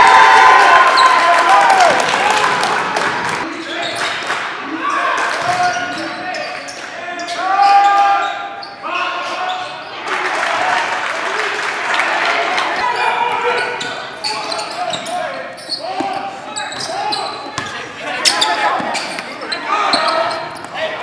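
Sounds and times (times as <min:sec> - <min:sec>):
players and spectators voices: 0:00.0 - 0:21.0.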